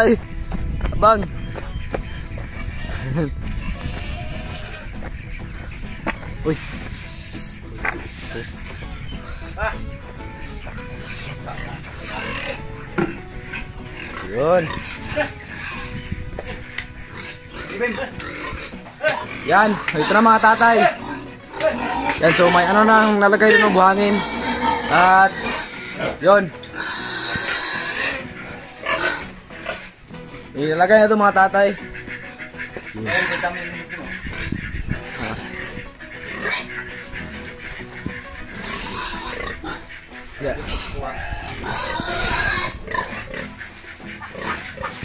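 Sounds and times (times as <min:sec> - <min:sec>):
pig grunting: 0:11.0 - 0:30.0, 0:31.8 - 0:45.0.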